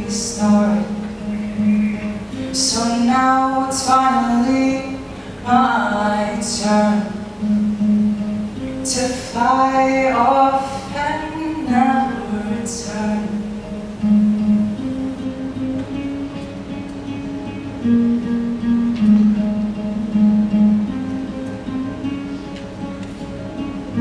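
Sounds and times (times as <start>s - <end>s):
person singing: 0.0s - 7.9s, 8.7s - 14.4s
acoustic guitar playing: 0.0s - 24.0s.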